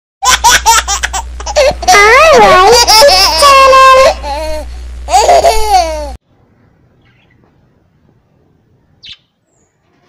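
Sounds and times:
baby giggling: 0.2 - 6.1.

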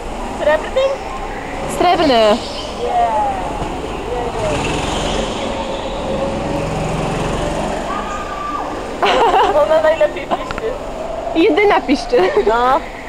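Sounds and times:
go-kart engine running: 0.0 - 11.0
tyres squealing on concrete: 0.4 - 13.0.

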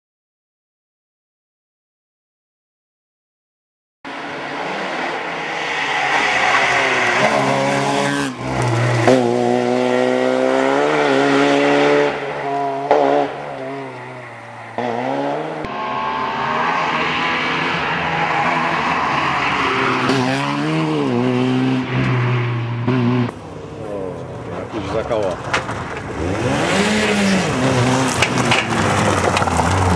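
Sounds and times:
rally car engine revving: 4.1 - 29.9.

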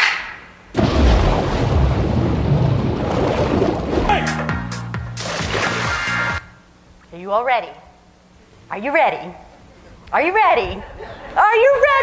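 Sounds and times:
rush of water with rumble: 0.8 - 4.1.

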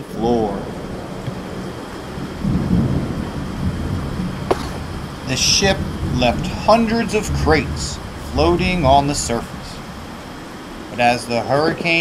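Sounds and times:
low thunder rumbling: 0.0 - 12.0
steady rain hiss: 0.0 - 12.0.

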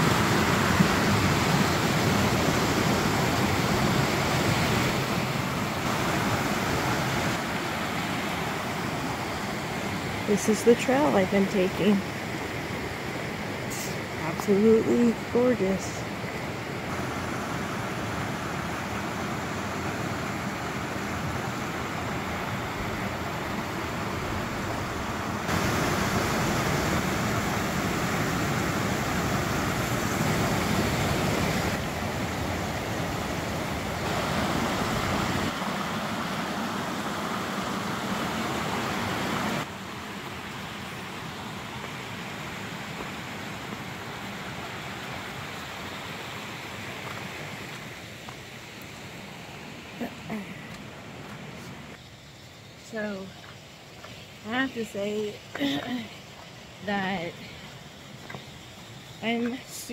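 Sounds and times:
creek rushing over rocks: 0.0 - 59.9.

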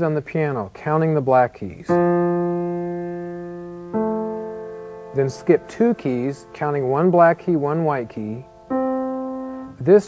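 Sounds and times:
grand piano notes: 1.9 - 10.0.

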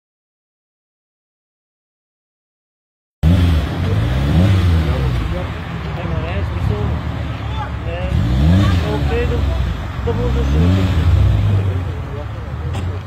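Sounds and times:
car engine revving: 3.2 - 13.0
people talking: 3.6 - 13.0.

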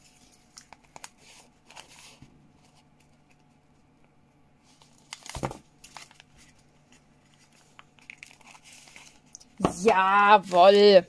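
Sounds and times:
paper crinkling: 0.0 - 11.0.

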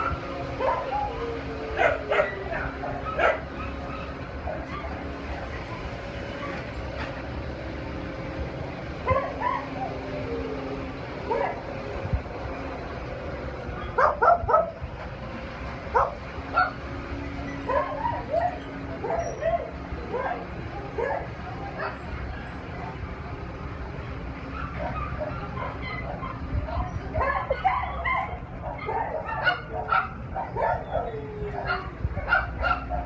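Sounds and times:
dog barking: 1.8 - 5.0, 9.1 - 9.6, 13.8 - 14.7, 15.9 - 16.8, 17.7 - 20.4, 21.0 - 22.0, 27.2 - 33.0.

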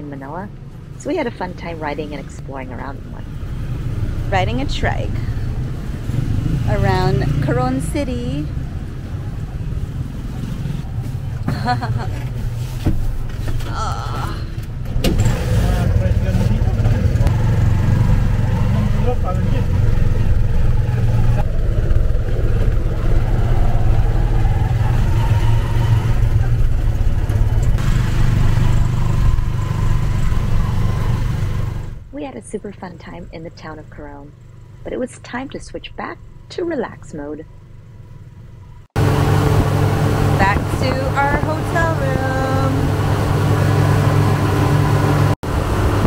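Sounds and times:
small motorcycle engine running: 15.4 - 32.0.

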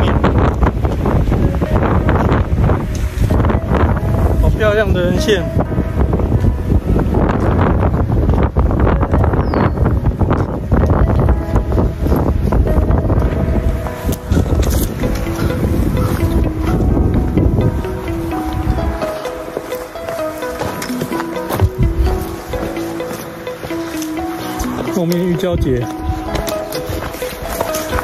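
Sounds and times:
background music with sustained notes: 0.0 - 28.0
wind buffeting microphone: 0.0 - 28.0.

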